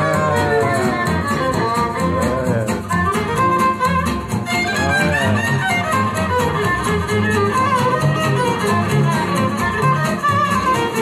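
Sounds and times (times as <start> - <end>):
strummed guitar chords: 0.0 - 11.0
violin melody with vibrato: 0.0 - 11.0.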